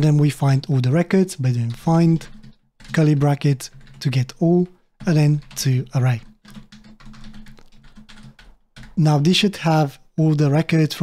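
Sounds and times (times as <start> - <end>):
computer keyboard typing: 0.0 - 9.3.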